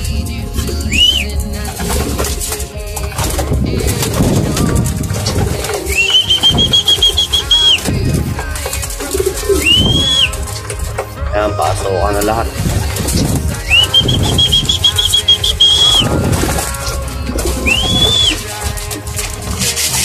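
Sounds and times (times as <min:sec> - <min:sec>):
pigeons cooing: 0:00.0 - 0:20.0
pigeons pecking: 0:00.0 - 0:20.0
wings flapping: 0:00.0 - 0:20.0
high whistle: 0:00.8 - 0:01.4, 0:05.7 - 0:08.0, 0:09.2 - 0:10.6, 0:13.6 - 0:16.6, 0:17.5 - 0:18.6.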